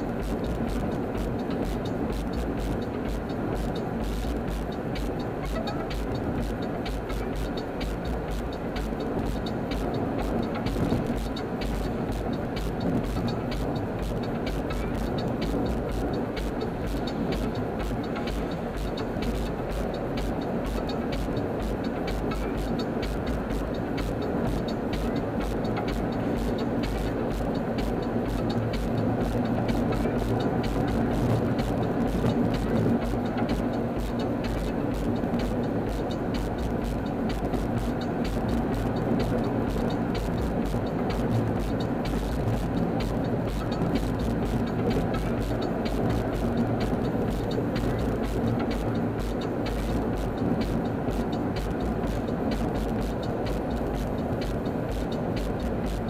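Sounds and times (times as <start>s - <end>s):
car road and engine noise: 0.0s - 56.0s.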